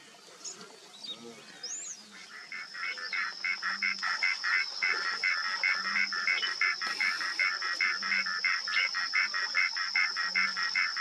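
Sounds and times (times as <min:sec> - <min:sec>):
insects buzzing: 0:00.0 - 0:11.0
insect pulsing call: 0:00.3 - 0:11.0.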